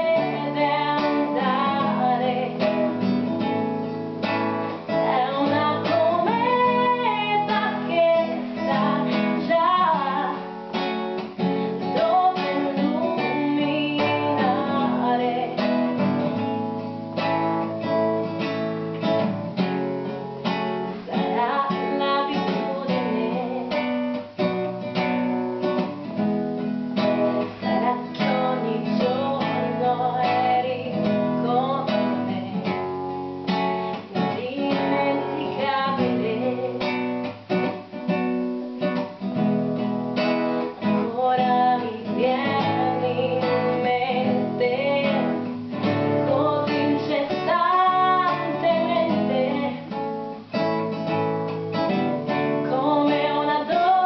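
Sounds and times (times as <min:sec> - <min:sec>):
woman singing: 0:00.0 - 0:18.4, 0:19.0 - 0:51.1, 0:51.8 - 0:54.0
classical guitar strumming: 0:00.0 - 0:54.0.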